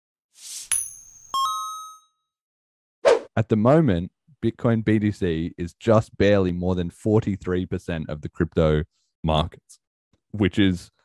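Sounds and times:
bright metallic ding: 0.7 - 2.1
lower chime: 0.7 - 2.2.

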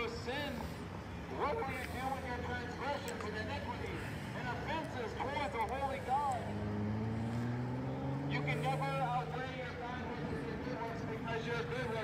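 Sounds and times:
distant voices: 0.0 - 12.0
car accelerating past: 6.0 - 10.5.

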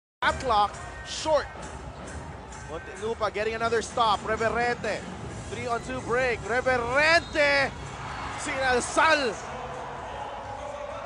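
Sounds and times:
arena crowd noise: 0.2 - 11.0.

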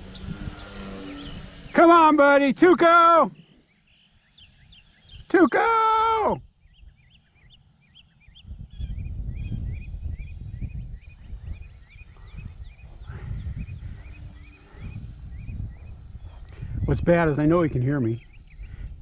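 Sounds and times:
small bird chirping: 0.0 - 1.8, 3.3 - 5.6, 6.4 - 19.0
wind buffeting microphone: 0.0 - 2.2, 6.4 - 19.0.

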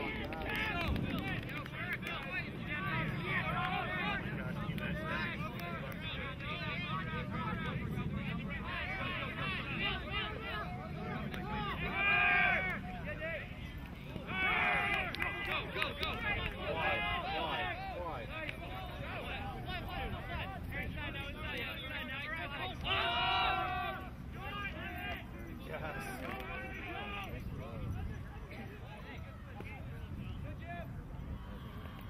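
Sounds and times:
voices shouting and calling out: 0.0 - 32.0.

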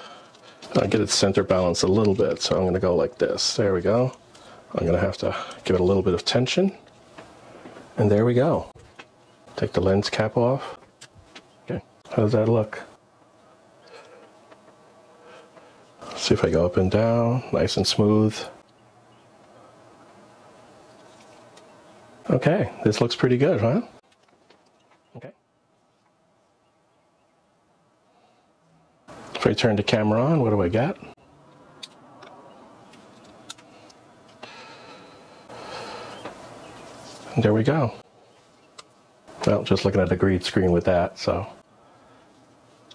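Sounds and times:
faint buzzing hum: 0.0 - 42.9.

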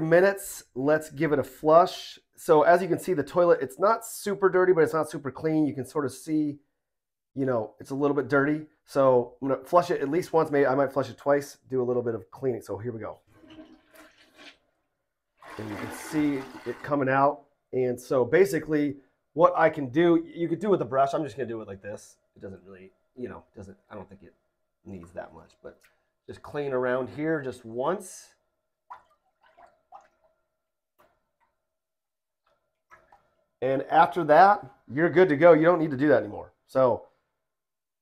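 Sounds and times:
water sloshing in toilet bowl: 13.2 - 17.1, 28.8 - 31.6, 32.4 - 33.6
toilet flushing: 13.3 - 14.6, 15.4 - 17.3.

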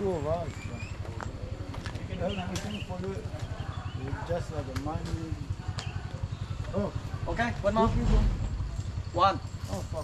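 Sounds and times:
people talking: 0.0 - 10.0
low rapid throbbing: 6.9 - 9.6.

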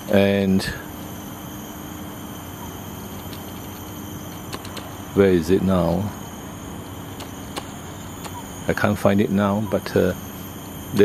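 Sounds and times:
even hum and hiss: 0.0 - 11.0.

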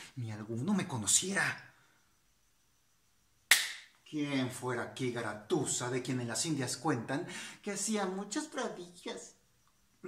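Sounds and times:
sharp hand smack: 3.5 - 3.9.

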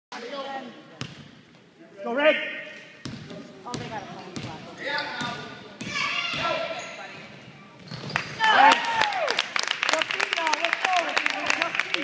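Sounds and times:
basketball bouncing on wooden floor: 3.0 - 4.6.

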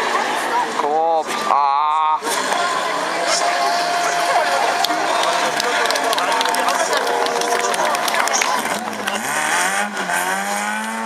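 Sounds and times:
race car engine revving: 2.3 - 11.0.

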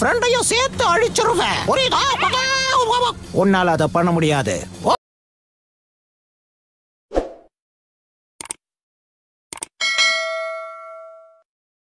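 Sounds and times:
bright bell ding: 9.8 - 11.5.

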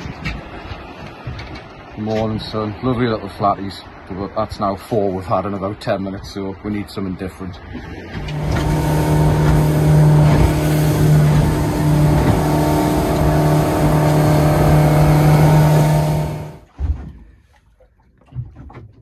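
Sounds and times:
water rushing: 6.8 - 16.7
outboard motor running: 7.9 - 16.7
small knocks and splashes: 16.6 - 19.0.

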